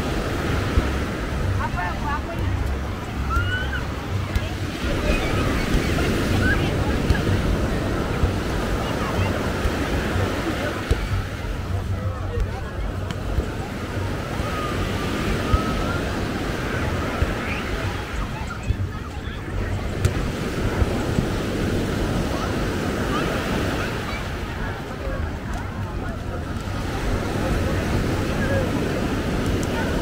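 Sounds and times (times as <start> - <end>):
waves washing up sand: 0.0 - 30.0.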